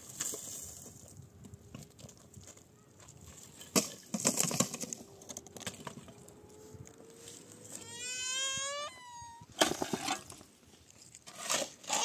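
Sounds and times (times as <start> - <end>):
clatter of stones and rubble: 0.0 - 6.2
small child whining cry: 7.7 - 9.5.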